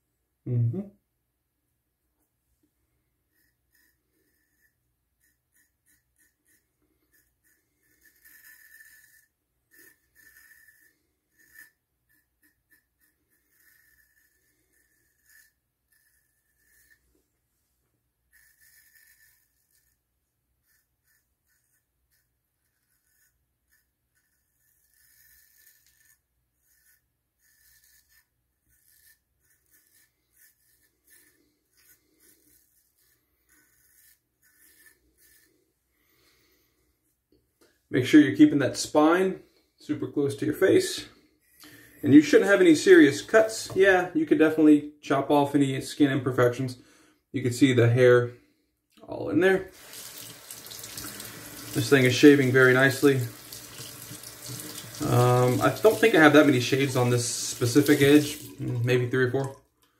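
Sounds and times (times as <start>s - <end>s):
razor scraping stubble: 3.2s - 17.4s, 18.3s - 36.8s, 40.4s - 44.7s, 49.7s - 59.5s.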